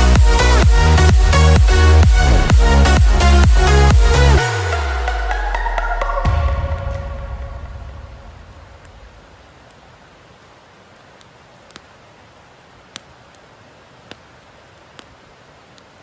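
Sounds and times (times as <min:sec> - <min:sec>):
music: 0:00.0 - 0:08.6
fire crackling pops: 0:06.1 - 0:16.0
campfire hissing: 0:06.3 - 0:16.0.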